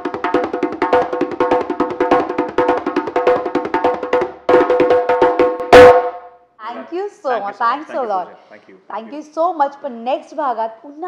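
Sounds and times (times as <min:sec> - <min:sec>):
djembe played by hand: 0:00.0 - 0:06.2.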